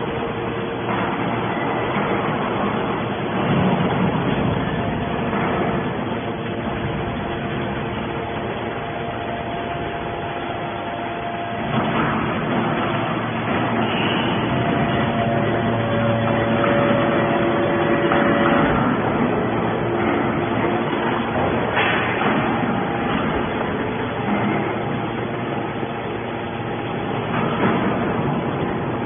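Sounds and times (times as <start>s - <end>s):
hydraulic power unit drone: 0.0s - 29.0s.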